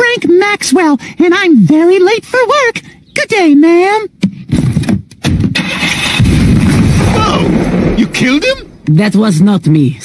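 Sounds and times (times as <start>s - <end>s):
cartoon car engine starting: 5.6s - 7.7s.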